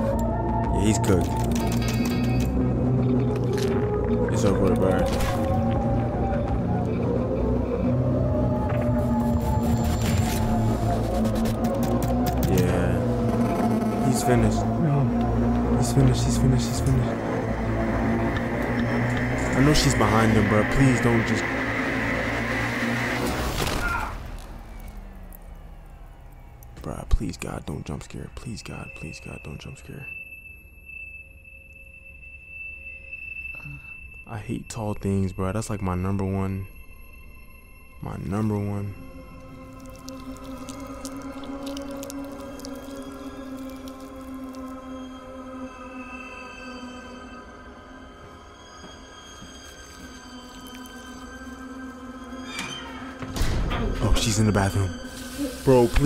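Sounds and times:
faint low hum with falling tones: 0:00.0 - 0:39.7
suspense drone with held tones: 0:00.0 - 0:56.0.

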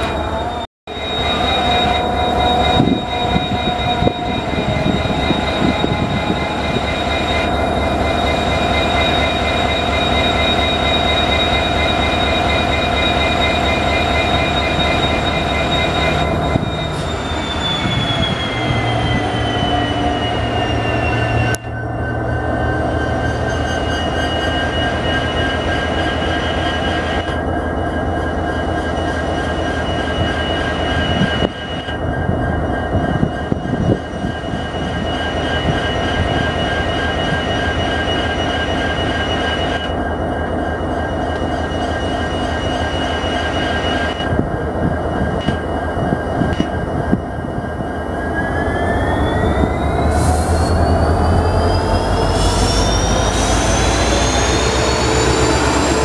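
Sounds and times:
high whining tones: 0:00.0 - 0:56.0
train rumble: 0:00.0 - 0:56.0.

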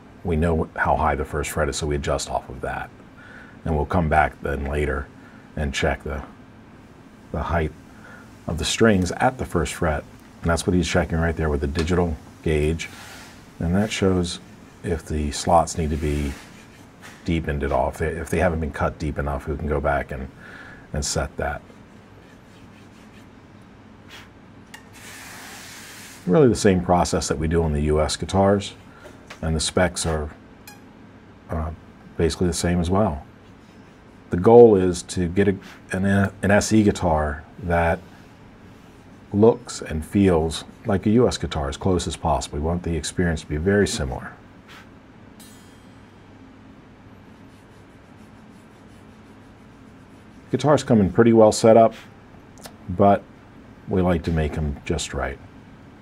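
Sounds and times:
faint background hum and hiss: 0:00.0 - 0:56.0
hand tool scraping: 0:15.4 - 0:17.8.

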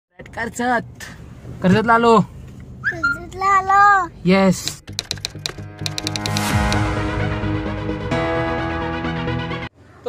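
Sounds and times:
keyboard typing clicks: 0:04.7 - 0:06.8
background music: 0:04.7 - 0:09.7.

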